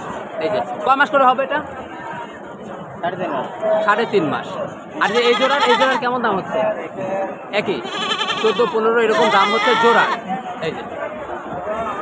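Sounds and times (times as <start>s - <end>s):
young goats bleating: 5.0s - 6.0s, 7.8s - 10.2s.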